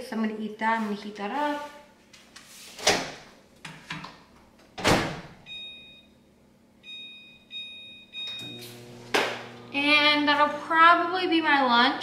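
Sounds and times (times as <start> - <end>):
microwave oven humming: 4.2 - 12.0
microwave door opening and shutting: 4.8 - 5.4
two-tone keypad beeps: 6.8 - 8.6.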